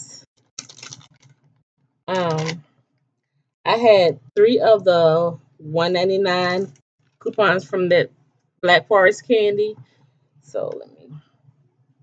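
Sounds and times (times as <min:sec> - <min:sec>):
paper rustling: 0:00.6 - 0:01.4.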